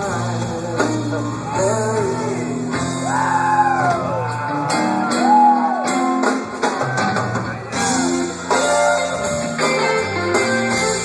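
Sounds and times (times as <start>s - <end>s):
bass guitar: 0.0s - 11.0s
drums: 0.0s - 11.0s.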